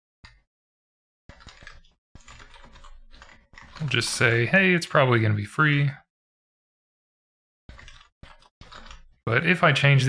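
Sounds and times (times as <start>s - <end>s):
typing on computer keyboard: 1.3s - 4.1s, 7.7s - 9.2s.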